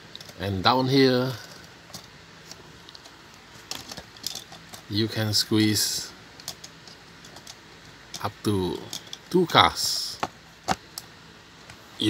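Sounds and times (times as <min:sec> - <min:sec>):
metal toy cars clinking on plastic: 0:03.6 - 0:04.9, 0:06.4 - 0:10.0.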